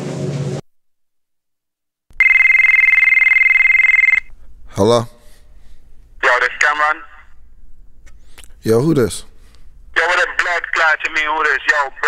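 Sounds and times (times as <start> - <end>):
telephone ringing: 2.2 - 4.3.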